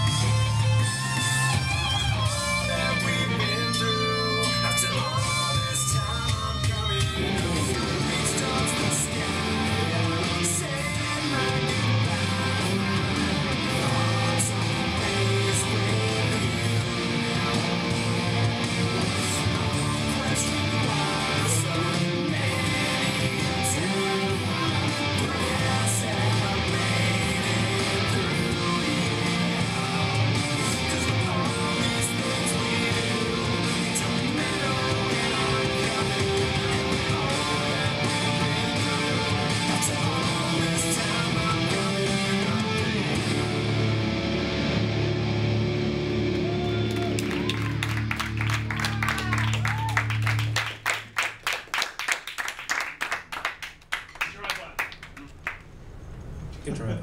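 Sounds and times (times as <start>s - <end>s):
amplified electric guitar playing: 0.0s - 50.8s.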